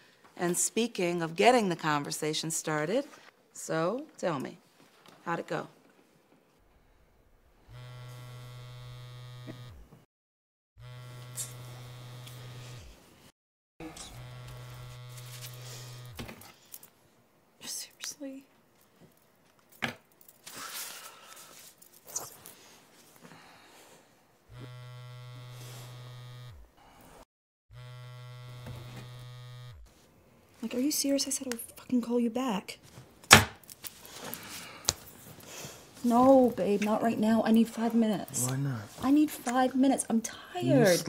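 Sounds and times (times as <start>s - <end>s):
electric buzzing alert: 7.6s - 9.9s, 10.8s - 13.0s, 13.8s - 16.4s, 24.5s - 26.7s, 27.7s - 29.9s.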